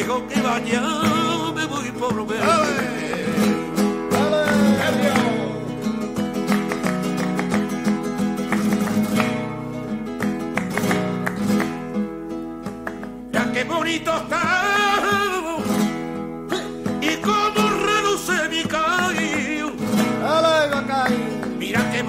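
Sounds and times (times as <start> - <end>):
man singing: 0.0 - 6.0, 13.3 - 15.9, 16.9 - 22.0
flamenco acoustic guitar: 0.0 - 22.0.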